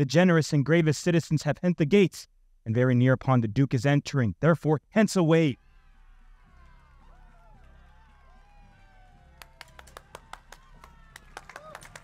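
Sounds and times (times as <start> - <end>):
people clapping: 5.6 - 12.0.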